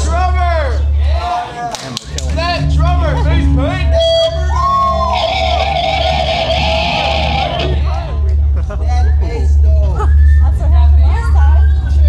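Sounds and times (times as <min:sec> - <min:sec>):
live rock band: 0:04.8 - 0:08.2.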